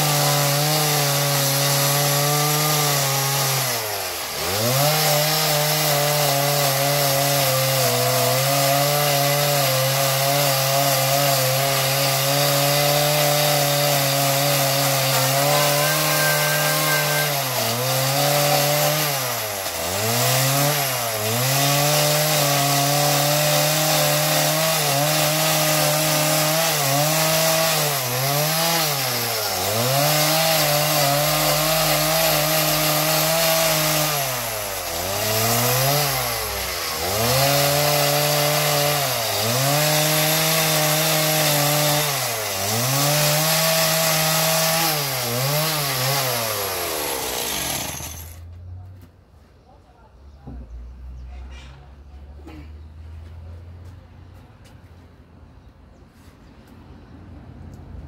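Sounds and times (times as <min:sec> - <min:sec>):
chainsaw cutting wood: 0:00.0 - 0:48.5.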